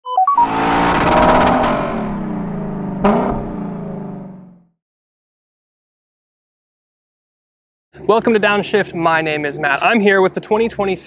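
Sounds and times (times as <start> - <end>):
quick electronic beeps: 0.0 - 1.5
sharp hit: 0.4 - 3.9.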